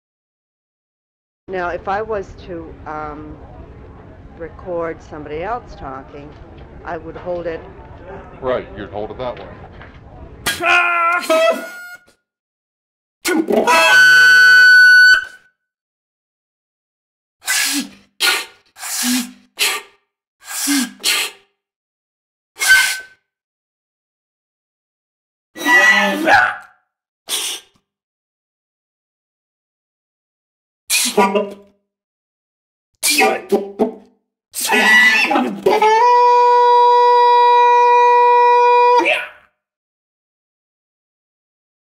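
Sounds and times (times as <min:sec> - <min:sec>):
reedy wind instrument tone: 0:13.6 - 0:15.4.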